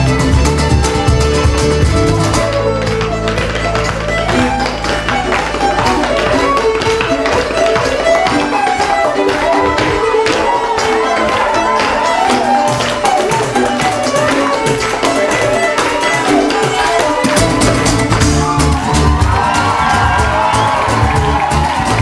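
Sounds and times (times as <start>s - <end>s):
accordion: 0.0s - 19.7s
fiddles: 0.0s - 21.0s
cajon tapping: 0.0s - 22.0s
acoustic guitar: 13.0s - 22.0s.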